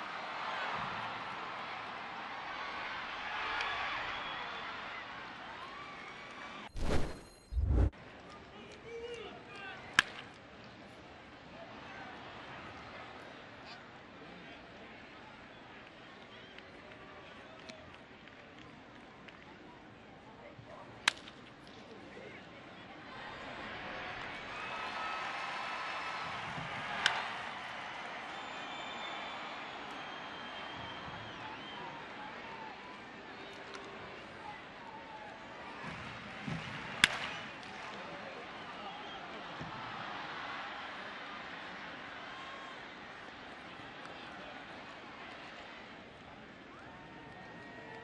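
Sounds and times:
faint crowd voices: 8.0 - 48.0
baseball bat hitting ball: 37.0 - 37.3.

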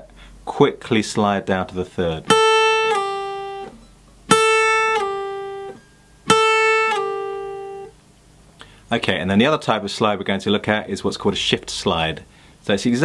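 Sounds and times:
acoustic guitar note sliding down: 2.3 - 7.9.

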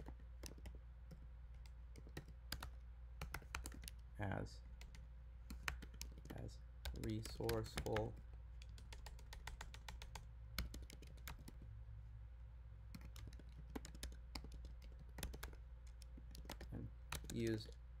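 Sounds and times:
typing on computer keyboard: 0.0 - 4.0, 4.8 - 11.6, 12.9 - 17.8.

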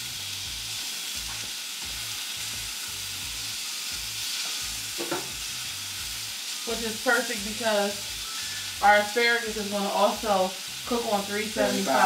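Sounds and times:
steak sizzling in a frying pan: 0.0 - 12.0.

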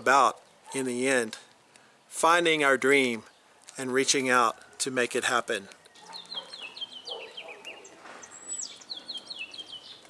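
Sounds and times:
songbird chirping: 2.9 - 10.0.

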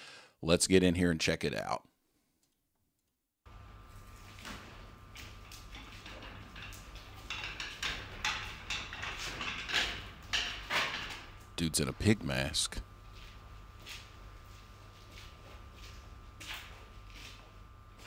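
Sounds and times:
steady low hum: 3.5 - 18.0
footsteps: 13.0 - 18.0.

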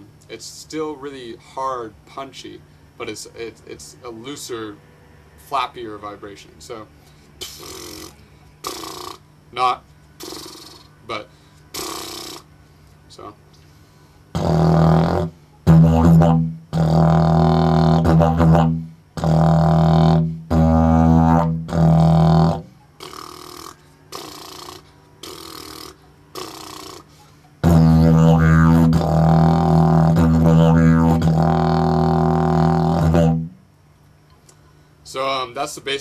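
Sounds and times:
didgeridoo drone: 14.3 - 33.6.

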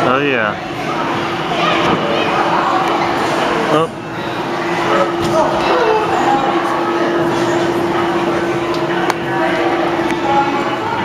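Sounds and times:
children and adults chatting: 0.0 - 11.0
steady hum: 0.0 - 11.0.

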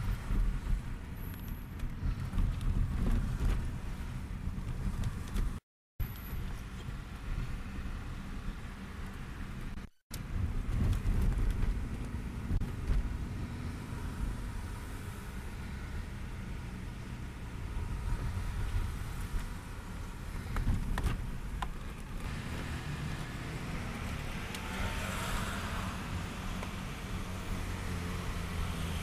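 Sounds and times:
car engine and road noise: 0.0 - 29.0.

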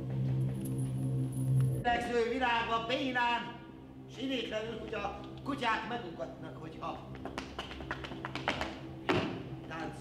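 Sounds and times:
low musical drone: 0.0 - 10.0
shoes tapping on wooden stage: 7.1 - 9.8.

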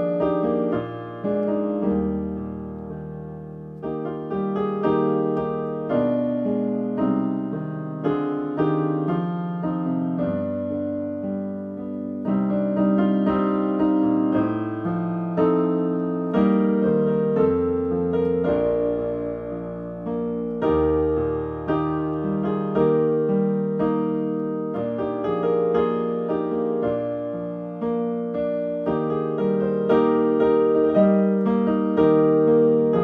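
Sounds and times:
piano playing classical piece: 0.0 - 33.0.

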